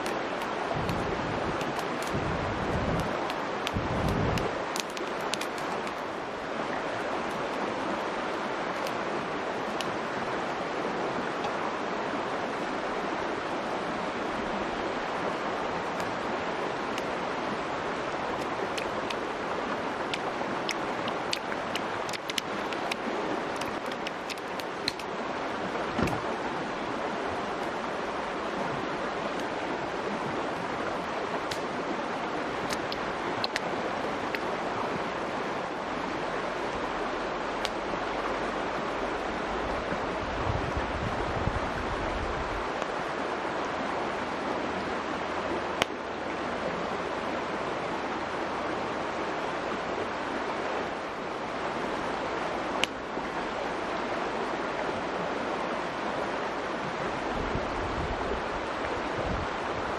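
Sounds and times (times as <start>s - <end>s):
mountain stream rushing: 0.0s - 59.9s
campfire wood snapping: 2.9s - 6.0s, 20.1s - 25.0s, 31.5s - 31.7s, 32.6s - 33.6s.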